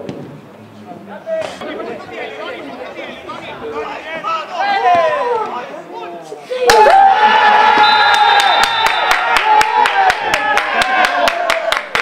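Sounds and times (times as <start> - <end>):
crowd shouting and cheering: 1.3 - 12.0
rhythmic clapping: 8.4 - 12.0.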